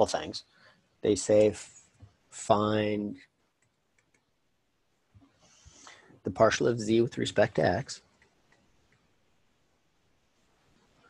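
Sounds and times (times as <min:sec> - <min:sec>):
stylus ticking on tablet screen: 0:03.5 - 0:04.4, 0:08.1 - 0:09.1.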